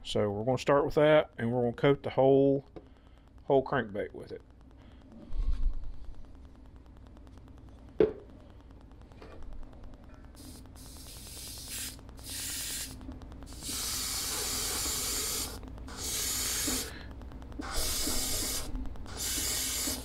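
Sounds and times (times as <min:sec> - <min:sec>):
airbrush hissing bursts: 0:10.4 - 0:17.0, 0:17.6 - 0:20.0.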